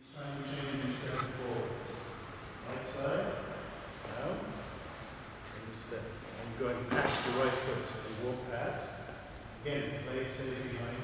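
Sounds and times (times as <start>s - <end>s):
man speaking in a hall: 0.0s - 11.0s.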